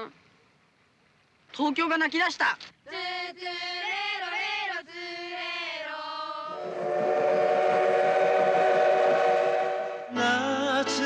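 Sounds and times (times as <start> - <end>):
voices singing held notes: 2.9 - 11.0.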